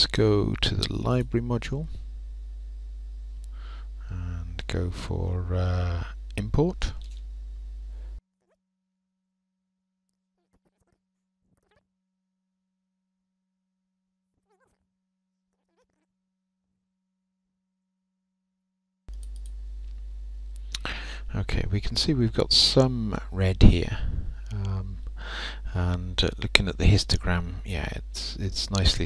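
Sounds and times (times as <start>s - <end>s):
low recording hum: 0.0s - 8.2s, 19.1s - 29.0s
faint clicks: 19.1s - 20.9s.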